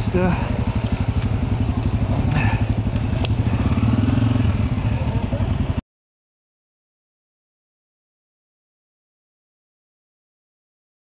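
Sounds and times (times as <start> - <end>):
dirt bike engine at low revs: 0.0 - 5.8
bike clicks and knocks: 0.5 - 3.4.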